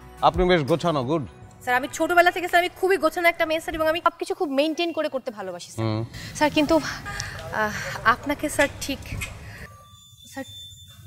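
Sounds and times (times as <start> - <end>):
woman speaking: 6.4 - 9.2.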